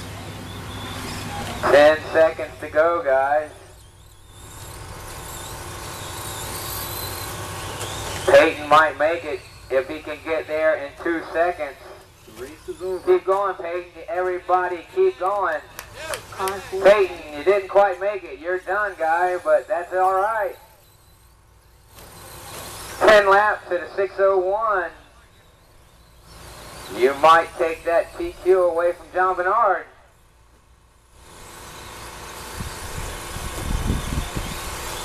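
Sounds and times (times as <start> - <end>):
rc truck motors whining: 0.0 - 35.0
tyres on dirt: 0.0 - 35.0.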